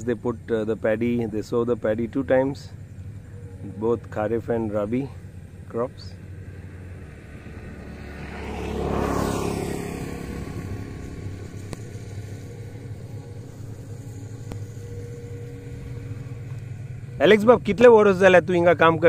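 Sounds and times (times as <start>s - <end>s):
low background hum: 0.0s - 19.0s
vehicle passing by: 1.0s - 19.0s.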